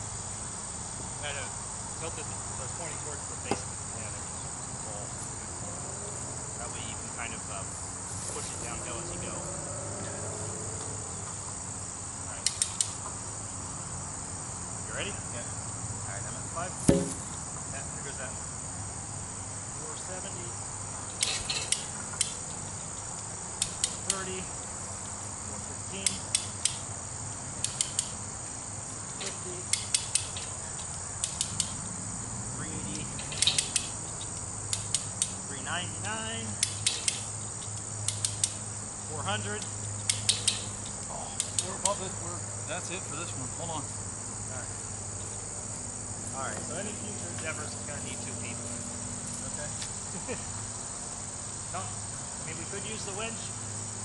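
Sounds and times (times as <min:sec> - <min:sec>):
crickets droning: 0:00.0 - 0:54.0
heavy thump: 0:16.8 - 0:17.4
winch ratchet clicks: 0:27.6 - 0:28.2, 0:29.7 - 0:31.8, 0:33.2 - 0:35.4, 0:36.6 - 0:38.6.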